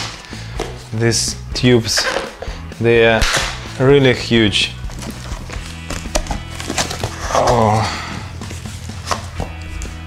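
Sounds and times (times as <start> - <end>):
background music: 0.0 - 10.0
cardboard flaps clicking: 4.8 - 7.8.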